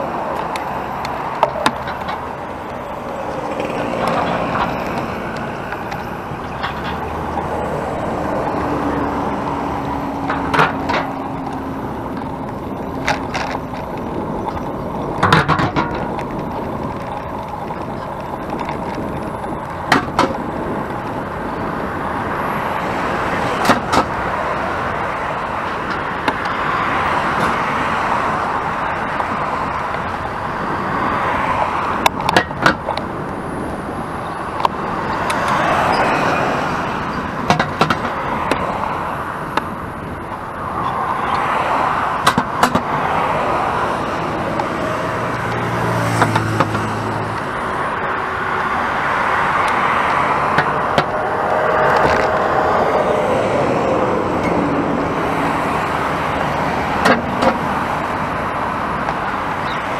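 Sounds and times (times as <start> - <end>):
passing traffic: 0.0 - 59.9
wind and road noise: 0.0 - 59.9.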